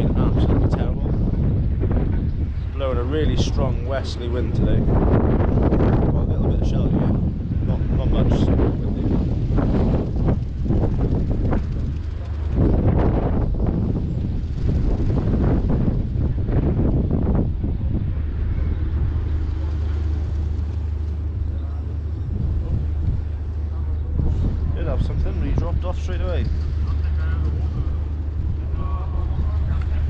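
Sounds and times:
boat engine low hum: 0.0 - 30.0
wind buffeting microphone: 0.0 - 30.0.

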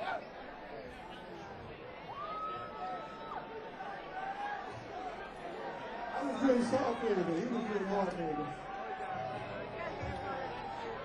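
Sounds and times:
audience chattering: 0.0 - 11.0.

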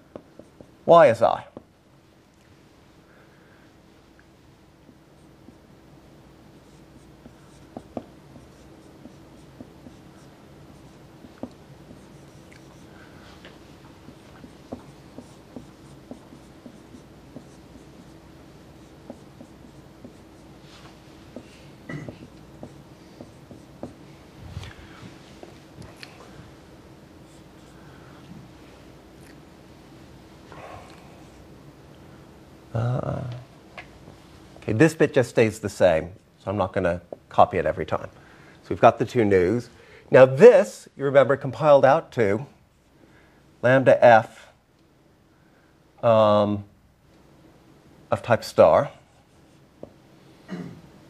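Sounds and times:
low room hum: 0.0 - 51.0
marker squeaking on whiteboard: 6.6 - 12.9, 14.1 - 18.2, 18.8 - 20.5, 22.2 - 24.0.

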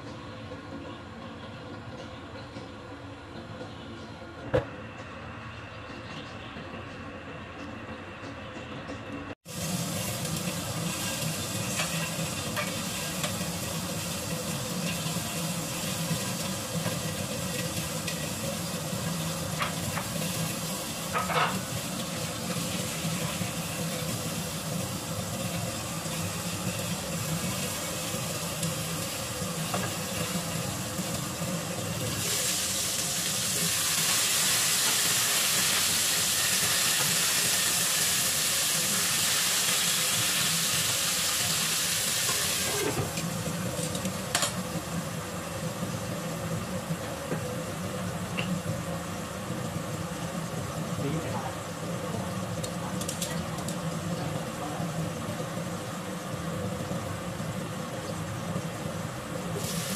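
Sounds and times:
fish frying in a pan: 9.4 - 59.9.

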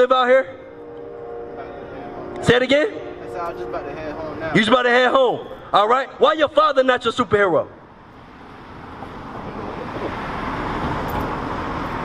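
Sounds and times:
car driving past: 8.0 - 12.0.

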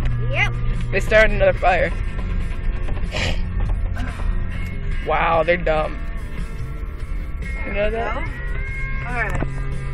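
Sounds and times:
vehicle cabin rumble: 0.0 - 9.9.

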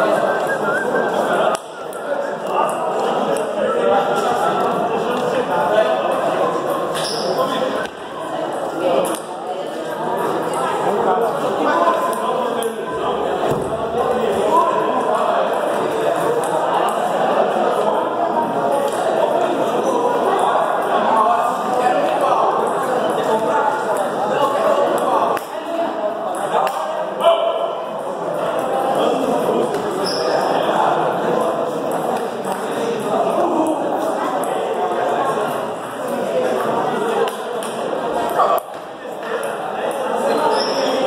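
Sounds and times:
background chatter: 0.0 - 41.0
voices echoing in a hall: 0.0 - 41.0.

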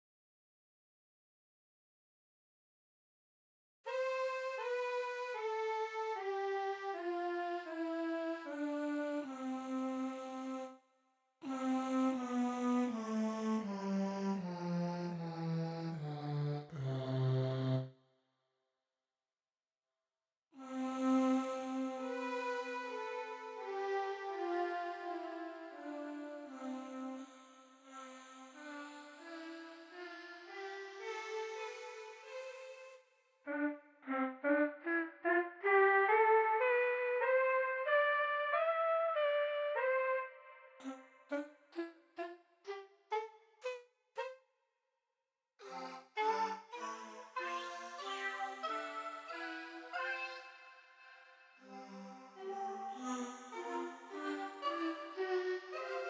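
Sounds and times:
sampled choir voice notes: 33.5 - 37.6, 40.0 - 44.3, 45.6 - 56.0
synthesized choir voices singing: 51.6 - 56.0.

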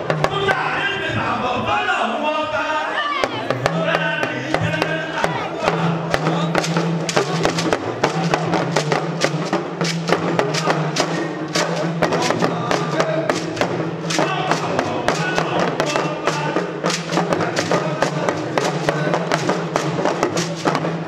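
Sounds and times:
talking drums fast rhythm: 0.0 - 21.0
man chanting into microphone: 0.2 - 6.7, 10.4 - 19.7.

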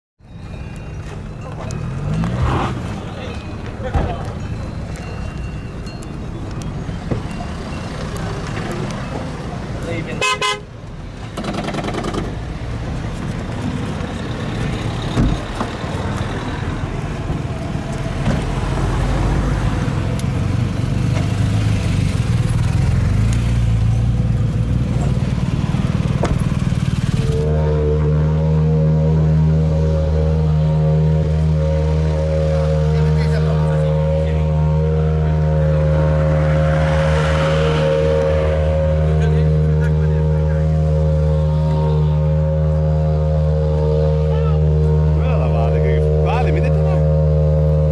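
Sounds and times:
car engines idling: 0.4 - 47.9
car horn toot: 10.1 - 10.8, 27.1 - 47.9
steady pitched drone: 23.6 - 47.9
crowd chatter: 38.6 - 47.2.

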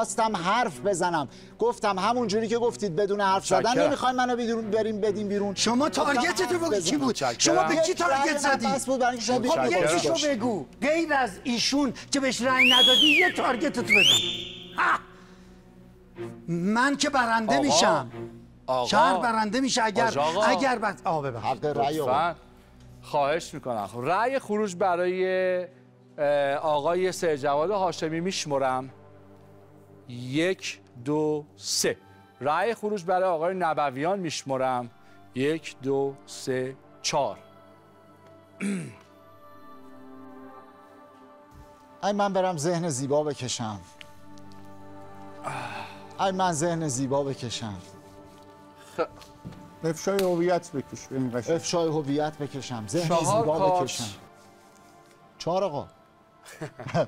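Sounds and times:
man speaking: 2.2 - 15.1, 16.5 - 22.4, 49.8 - 54.2
high whistle gliding up: 12.6 - 14.8.

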